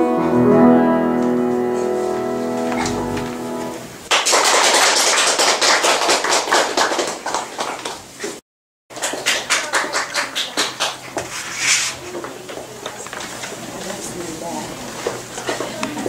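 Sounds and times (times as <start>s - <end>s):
piano piece: 0.0s - 4.1s
audience applause: 4.1s - 8.1s, 8.9s - 11.2s.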